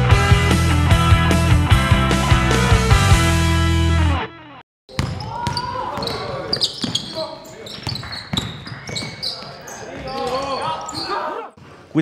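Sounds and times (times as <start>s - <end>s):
basketball bouncing on hardwood: 4.9s - 6.2s, 7.8s - 9.2s
players calling out: 4.9s - 11.6s
sneaker squeaks: 4.9s - 11.8s.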